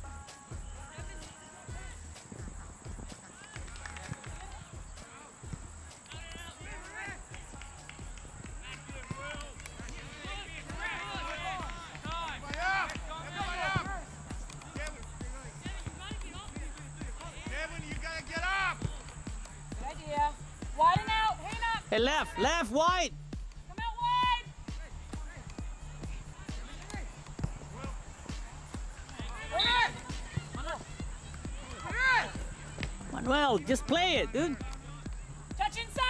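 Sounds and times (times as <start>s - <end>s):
distant shouts and calls: 0.6s - 36.0s.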